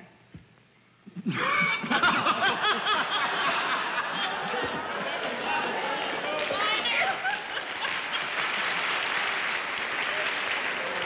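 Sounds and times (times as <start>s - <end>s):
audience laughing: 1.3s - 9.1s.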